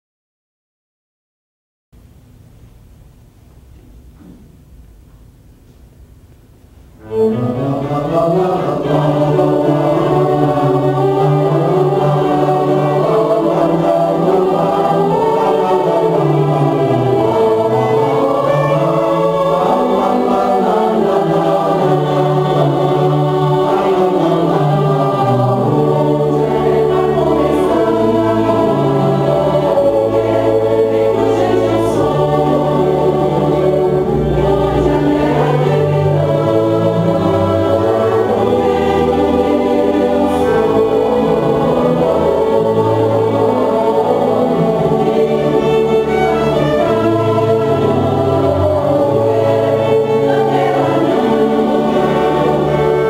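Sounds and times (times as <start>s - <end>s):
string orchestra: 6.9s - 53.0s
mixed choir singing: 7.0s - 53.0s.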